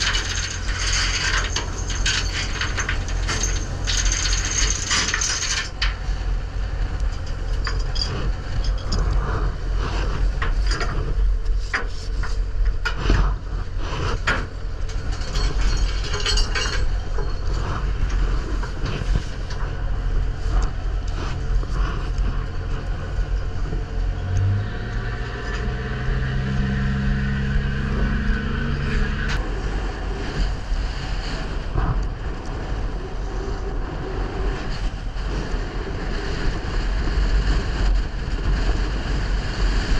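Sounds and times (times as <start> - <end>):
rope rattling through block: 0.0 - 6.1
boat engine drone: 0.0 - 39.9
low hum with overtones: 0.0 - 39.9.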